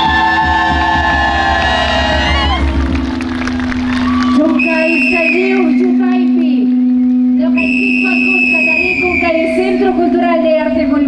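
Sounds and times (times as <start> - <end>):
low hum: 0.0 - 11.0
high whistle-like tone: 4.6 - 6.1, 6.8 - 9.6.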